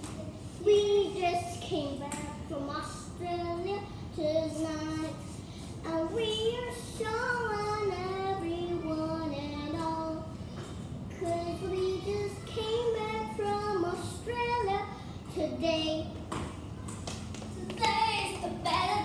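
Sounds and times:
girl singing slow melody: 0:00.0 - 0:16.5, 0:17.5 - 0:19.0.

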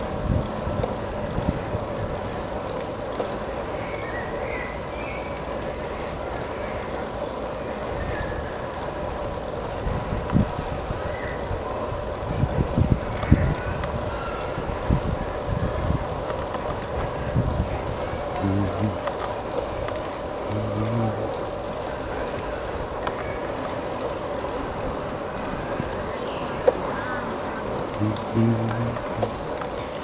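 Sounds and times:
wind buffeting microphone: 0:00.0 - 0:02.5, 0:07.9 - 0:19.1
bicycle rolling on asphalt: 0:00.0 - 0:30.0.

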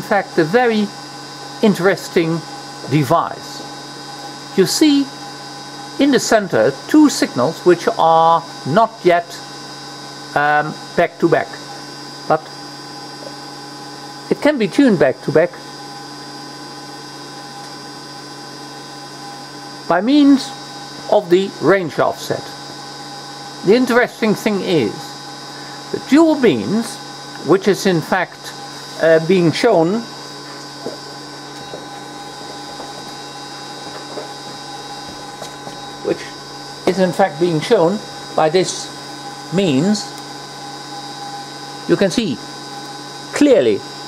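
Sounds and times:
steady electrical hum: 0:00.0 - 0:44.0.

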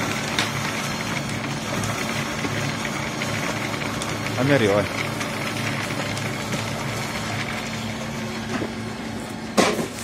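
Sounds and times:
pellet press humming: 0:00.0 - 0:10.0.

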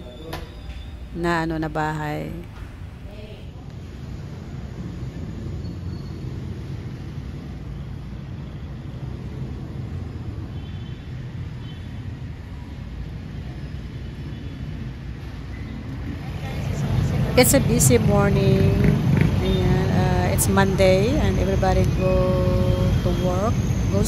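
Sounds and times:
rumble of passing traffic: 0:00.0 - 0:24.0.

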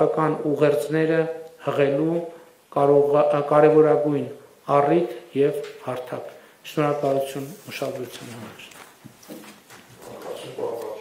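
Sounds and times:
people talking: 0:00.0 - 0:08.8, 0:10.0 - 0:11.0.

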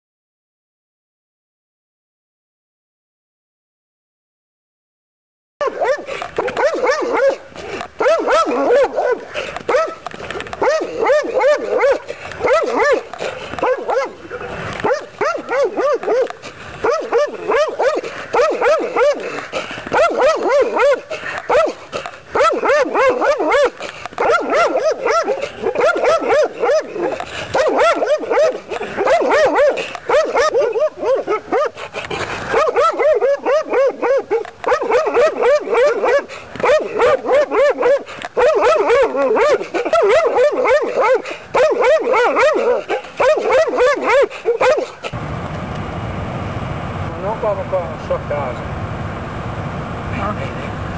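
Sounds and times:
dog barking aggressively: 0:05.6 - 0:45.2.

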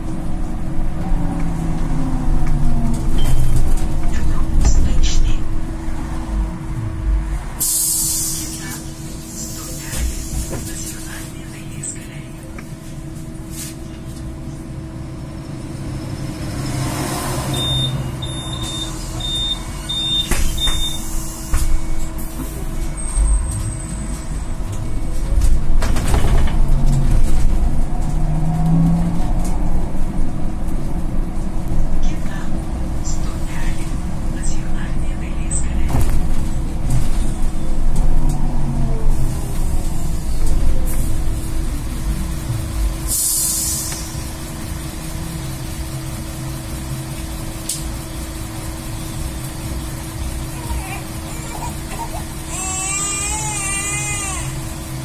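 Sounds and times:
road rumble: 0:00.0 - 0:55.0
air hiss: 0:07.6 - 0:11.3, 0:43.1 - 0:44.4.

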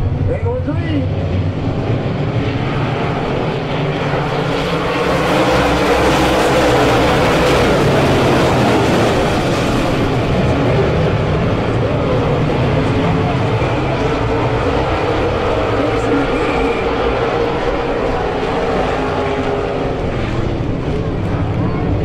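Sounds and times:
race car engines at full throttle: 0:00.0 - 0:22.0.

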